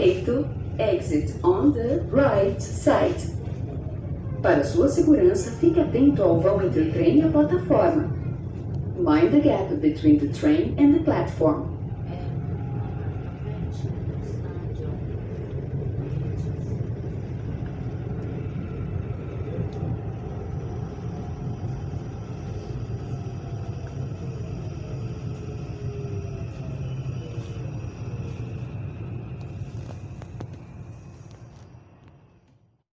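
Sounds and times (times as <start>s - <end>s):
train rumble with falling whine: 0.0s - 32.8s.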